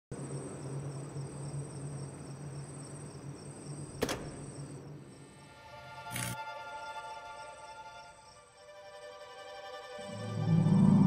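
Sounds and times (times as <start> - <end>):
crickets chirping: 0.1 - 11.0.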